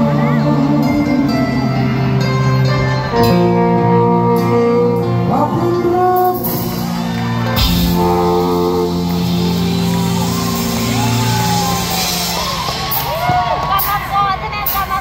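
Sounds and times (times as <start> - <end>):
person singing: 0.0 - 6.9
electric guitar chords: 0.0 - 14.0
live rock band playing: 0.0 - 15.0.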